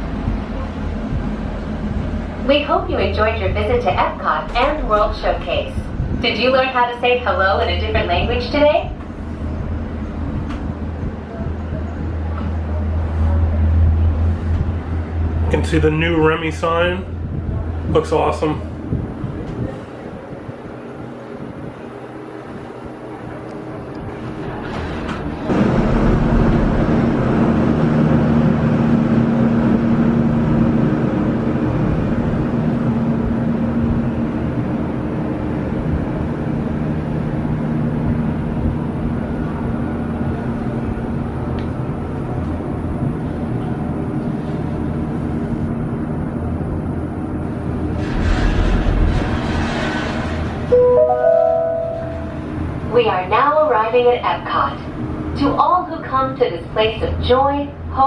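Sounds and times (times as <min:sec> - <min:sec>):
low steady hum: 0:00.0 - 0:20.3, 0:50.7 - 0:58.0
gondola cabin running on cable: 0:00.0 - 0:58.0.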